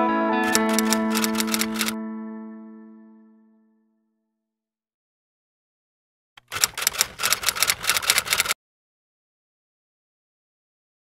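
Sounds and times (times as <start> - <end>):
rapid sharp clicks: 0.5 - 1.9, 6.4 - 8.6.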